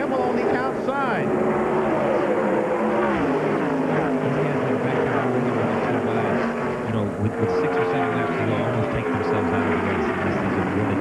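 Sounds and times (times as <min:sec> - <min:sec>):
race car engines at full throttle: 0:00.0 - 0:11.0.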